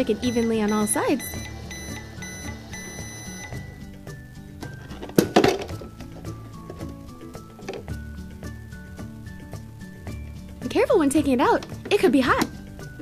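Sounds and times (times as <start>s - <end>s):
toy microwave beeping: 0.0s - 3.9s
toy microwave electronic tones: 0.0s - 3.9s
background music: 0.0s - 13.0s.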